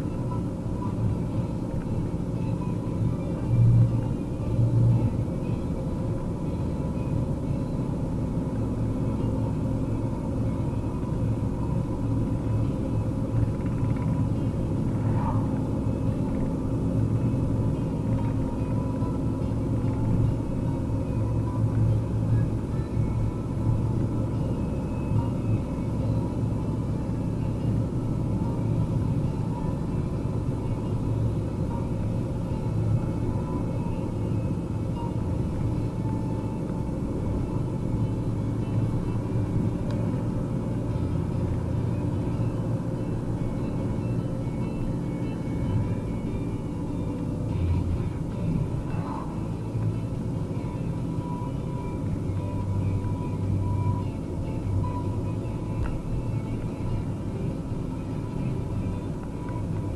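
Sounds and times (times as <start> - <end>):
diesel van engine and road noise: 0.0 - 59.9.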